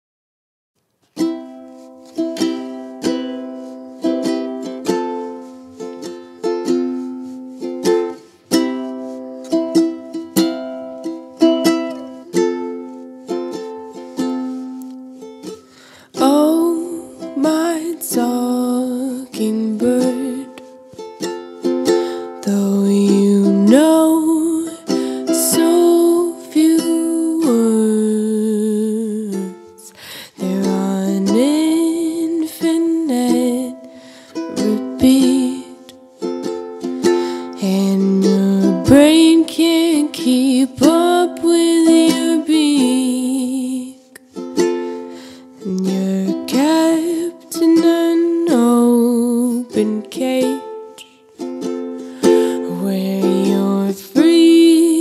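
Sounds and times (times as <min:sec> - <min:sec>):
ukulele strumming chords: 0:01.0 - 0:55.0
woman singing: 0:16.1 - 0:20.9, 0:21.6 - 0:36.0, 0:36.8 - 0:45.0, 0:45.6 - 0:55.0.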